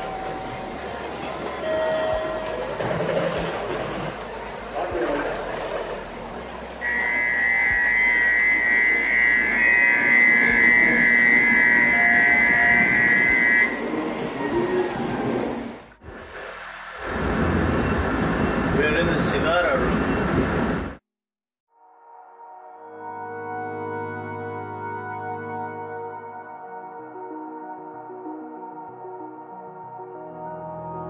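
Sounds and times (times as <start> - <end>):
trilling two-tone electronic chime: 6.8 - 15.1.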